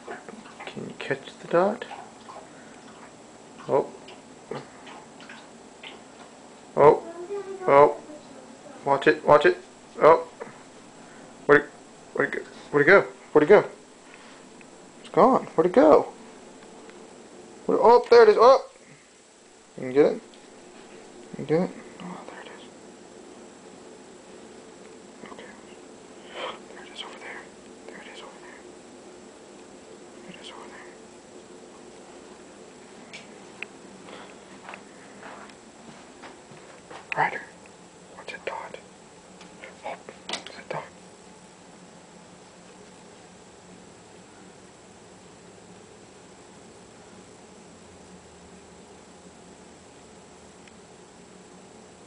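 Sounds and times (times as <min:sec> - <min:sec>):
low room hum: 0:00.0 - 0:52.0
person whispering: 0:21.7 - 0:22.7, 0:25.2 - 0:28.7, 0:30.2 - 0:31.0, 0:37.1 - 0:37.6, 0:38.2 - 0:38.9, 0:39.6 - 0:41.0.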